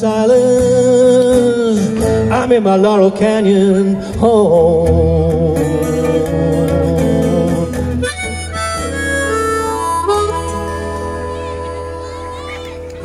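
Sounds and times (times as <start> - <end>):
strummed acoustic guitar: 0.0 - 13.0
harmonica playing: 7.6 - 13.0.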